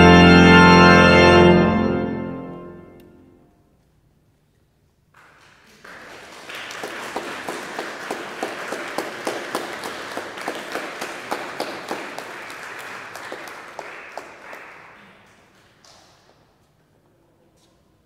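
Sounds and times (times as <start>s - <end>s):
crowd applauding: 5.2s - 16.2s.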